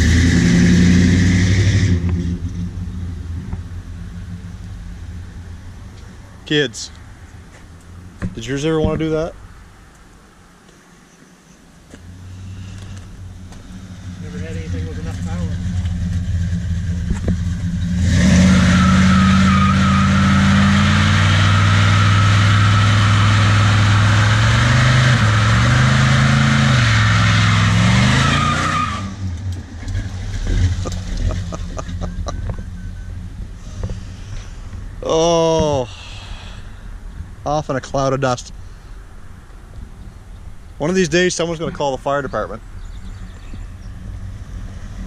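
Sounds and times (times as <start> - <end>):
car engine revving: 0.0 - 6.5, 12.0 - 35.2
tyres squealing: 18.4 - 29.2.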